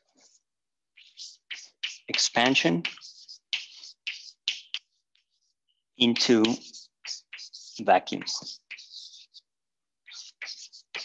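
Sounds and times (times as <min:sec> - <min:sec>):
chalk scratching on chalkboard: 0:01.0 - 0:11.0.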